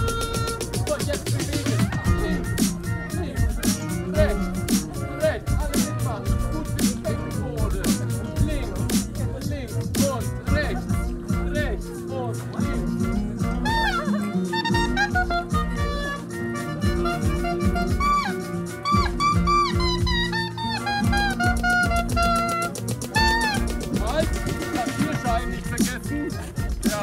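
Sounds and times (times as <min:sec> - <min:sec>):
clarinet melody: 0:00.0 - 0:09.0, 0:10.3 - 0:27.0
electronic dance beat: 0:00.0 - 0:27.0.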